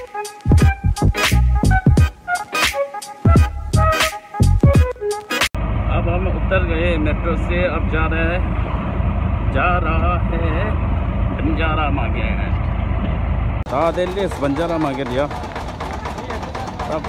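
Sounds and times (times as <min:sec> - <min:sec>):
music: 0:00.0 - 0:05.6
vehicle engine rumble: 0:05.5 - 0:17.0
voices talking: 0:13.7 - 0:17.0.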